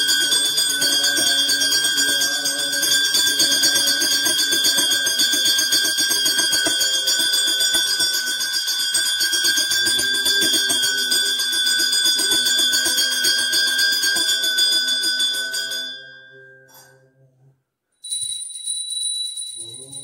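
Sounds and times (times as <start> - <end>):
low chanting voice: 0.0 - 8.5, 9.5 - 17.6
small hand bell ringing: 0.0 - 17.0, 18.0 - 20.0.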